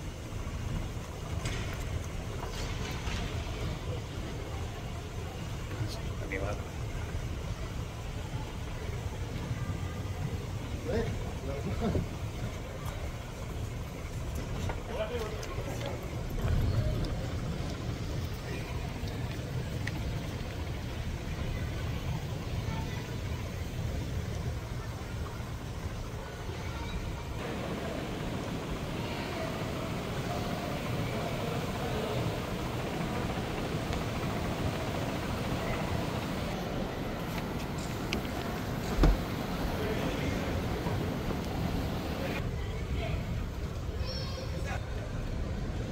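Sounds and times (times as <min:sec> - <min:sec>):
distant indistinct voices: 0:00.0 - 0:45.9.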